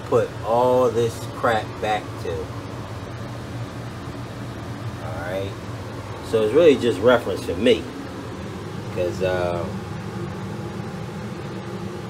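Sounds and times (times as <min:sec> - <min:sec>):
low mechanical hum: 0:00.0 - 0:12.0.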